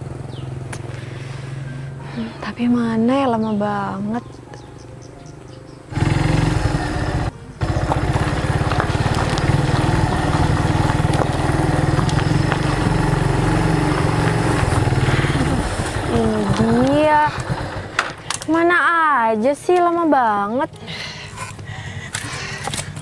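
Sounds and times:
motorcycle engine running: 0.0s - 23.0s.

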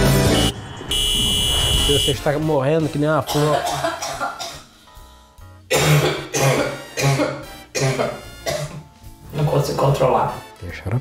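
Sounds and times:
background music: 0.0s - 0.7s, 1.8s - 11.0s
man coughing hard: 3.2s - 4.7s, 5.7s - 8.8s.

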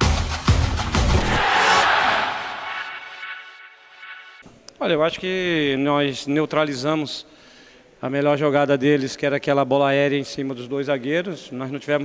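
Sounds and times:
electronic intro music: 0.6s - 4.4s
crowd-like rushing roar: 1.0s - 4.3s.

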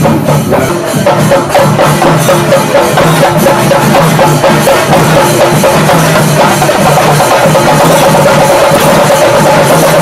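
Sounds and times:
clashing cymbals: 0.0s - 10.0s
drums beating: 0.0s - 10.0s.

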